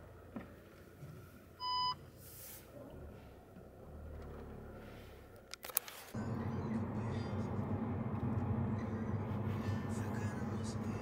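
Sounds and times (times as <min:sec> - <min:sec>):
engine and cabin rumble: 0:02.7 - 0:11.0.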